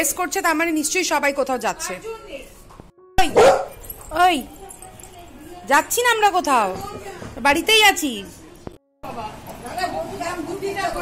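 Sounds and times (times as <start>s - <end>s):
dog barking: 3.3s - 3.8s.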